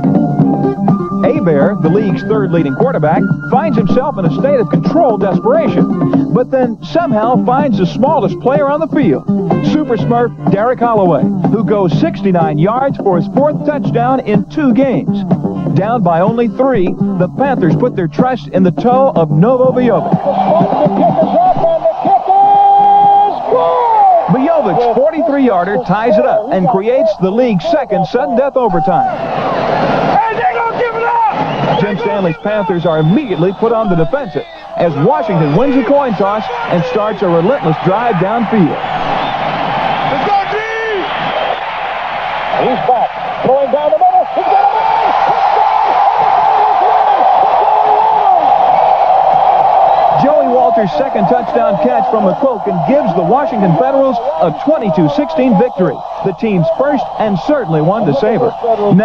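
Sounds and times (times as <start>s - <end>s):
stadium crowd cheering: 19.4s - 59.0s
excited voices shouting: 19.8s - 59.0s
man shouting: 30.2s - 31.4s, 32.0s - 38.5s, 40.2s - 41.0s.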